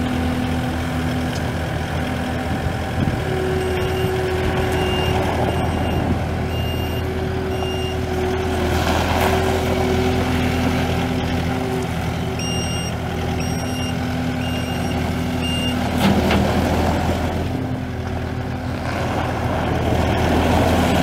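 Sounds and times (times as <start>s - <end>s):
diesel engine running: 0.0s - 21.0s
backup alarm beeping: 3.6s - 8.0s, 12.4s - 15.8s.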